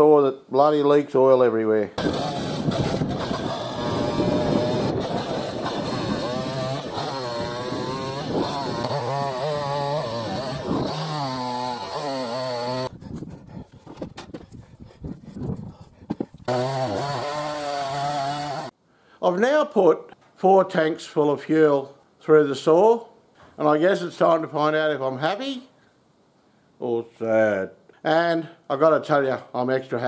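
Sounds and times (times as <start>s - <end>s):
chainsaw cutting logs: 2.0s - 14.6s, 16.0s - 18.8s.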